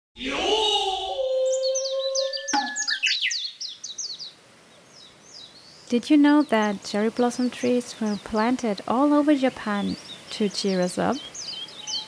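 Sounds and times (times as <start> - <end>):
drawn-out shout: 0.2 - 2.3
birds chirping: 0.2 - 12.0.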